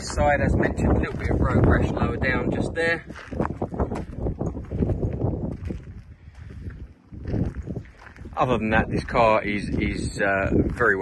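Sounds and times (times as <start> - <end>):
footsteps on gravel: 0.0 - 11.0.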